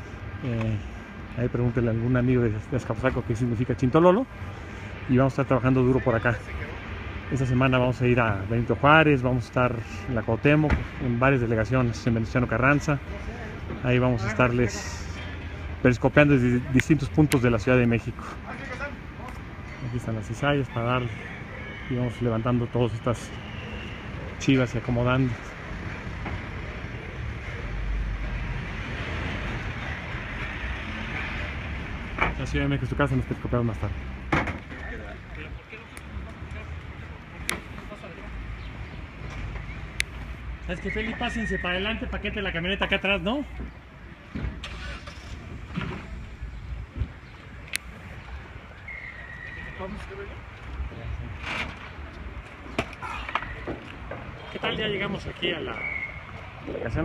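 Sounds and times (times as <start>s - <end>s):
street noise: 0.0s - 57.0s
man speaking: 7.3s - 15.2s
truck engine rumbling: 23.2s - 57.0s.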